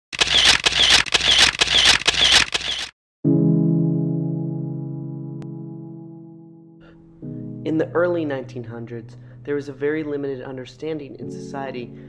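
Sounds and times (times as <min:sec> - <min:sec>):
mechanical camera clicking: 0:00.1 - 0:02.9.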